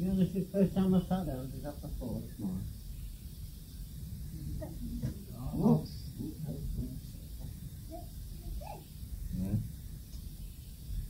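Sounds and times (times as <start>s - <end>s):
quiet voices: 4.3s - 9.7s.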